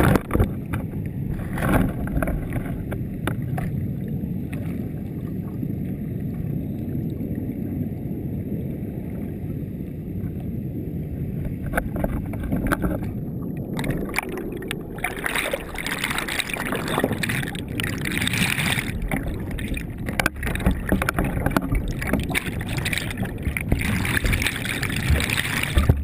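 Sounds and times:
muffled underwater churning rumble: 0.0s - 26.0s.

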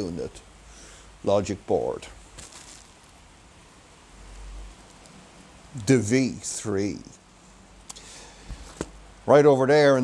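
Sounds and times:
circuit board handling noise: 2.3s - 3.2s, 8.5s - 9.0s.

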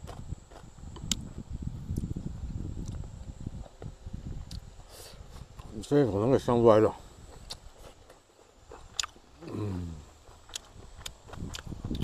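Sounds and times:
man chewing food: 0.0s - 2.2s, 2.8s - 5.7s, 7.2s - 12.0s
mouth clicks: 8.8s - 12.0s.

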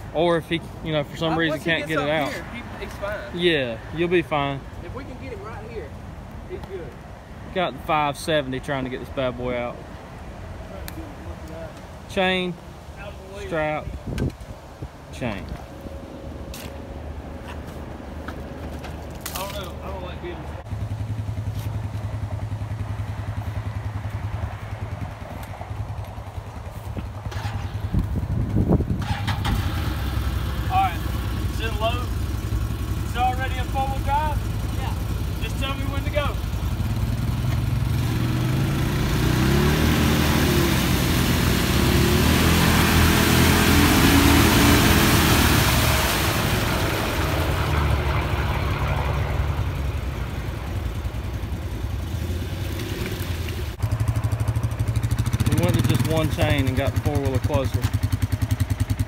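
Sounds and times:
off-road vehicle engines revving: 0.0s - 12.6s, 26.9s - 59.0s
wheels churning in mud: 29.0s - 59.0s.

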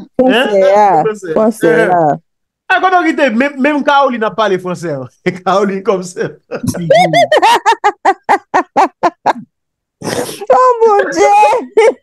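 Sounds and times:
man laughing hard: 6.4s - 9.4s.

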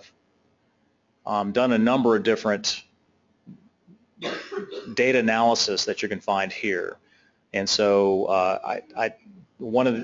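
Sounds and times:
man speaking: 1.3s - 2.9s, 4.9s - 7.0s, 7.6s - 10.0s
man coughing: 4.2s - 5.1s.

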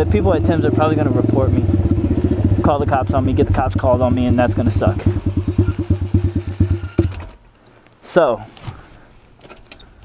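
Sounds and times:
dirt bike engine idling: 0.0s - 7.5s.

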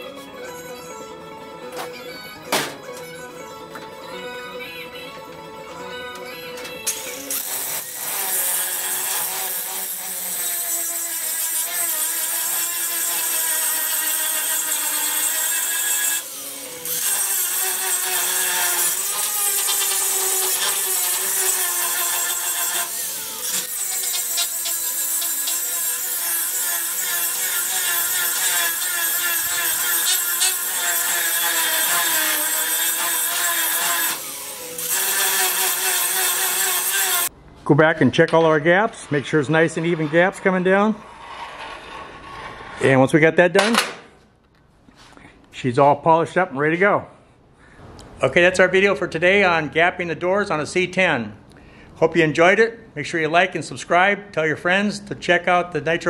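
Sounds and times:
background music: 0.0s - 10.0s
power grinder whining on steel: 6.4s - 37.3s.

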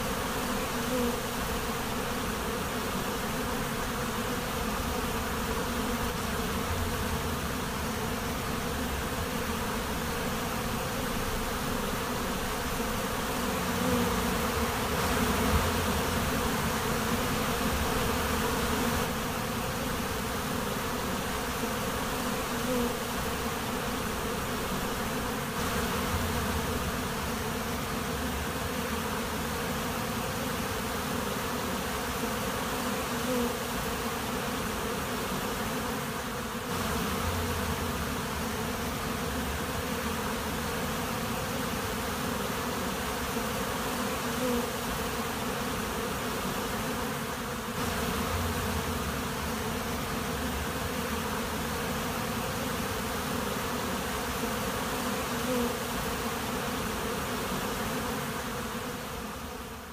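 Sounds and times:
bee swarm buzzing: 0.0s - 59.9s.

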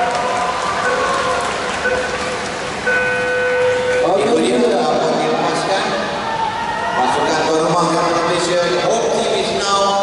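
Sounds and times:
crowd hubbub: 0.0s - 9.2s
long start beep: 2.8s - 4.2s
short electronic beep: 2.9s - 4.2s.

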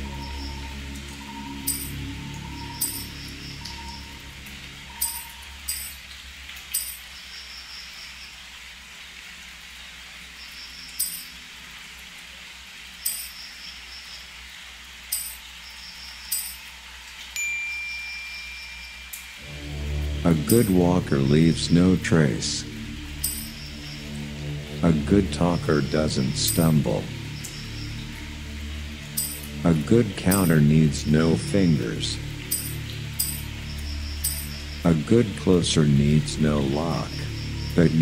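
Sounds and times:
thin high tone: 0.0s - 4.2s, 4.9s - 6.0s, 16.3s - 16.7s, 17.4s - 22.4s, 23.2s - 24.1s, 29.1s - 29.6s
low drone: 0.0s - 6.2s, 17.8s - 38.0s
steady hiss: 0.0s - 38.0s.

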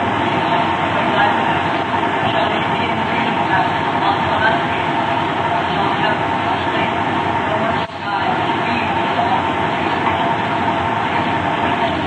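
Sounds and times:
faint indistinct voices: 0.0s - 12.0s
loud steady rumbling: 0.0s - 12.0s.

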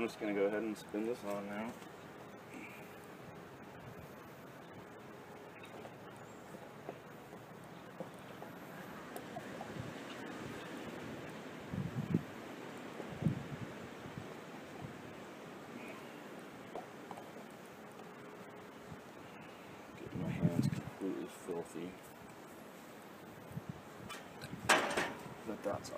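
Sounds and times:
outdoor air hiss: 0.0s - 25.9s.

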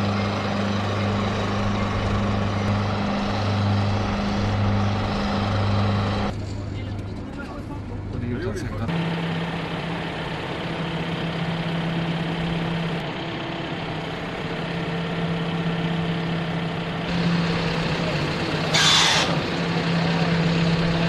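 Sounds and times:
diesel truck engine idling: 0.0s - 21.0s
short loud air hiss: 18.7s - 19.3s.

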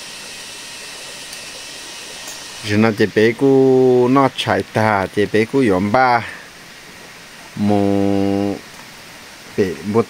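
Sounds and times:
person talking: 2.6s - 6.4s, 7.6s - 8.6s, 9.6s - 10.0s
person humming: 7.6s - 8.6s.

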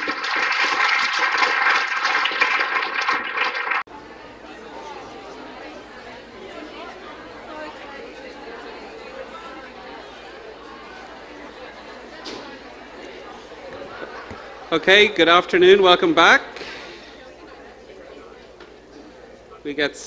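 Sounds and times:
audience applauding: 0.0s - 17.3s
murmur of audience chatter: 3.9s - 20.0s.

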